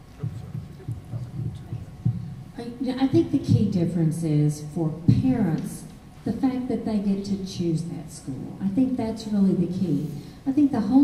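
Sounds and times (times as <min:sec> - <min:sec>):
microphone handling thumps: 0:00.0 - 0:03.7.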